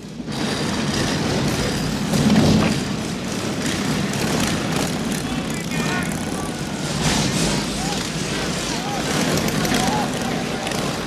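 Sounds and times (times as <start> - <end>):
motorcycle engines rumbling: 0.0 - 11.0
voices calling out: 5.0 - 11.0.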